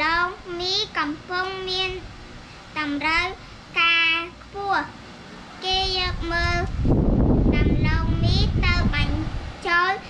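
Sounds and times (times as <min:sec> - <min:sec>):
girl chanting text aloud: 0:00.0 - 0:02.0, 0:02.8 - 0:04.9, 0:05.6 - 0:06.7, 0:07.5 - 0:10.0
low rumbling noise: 0:05.6 - 0:09.9.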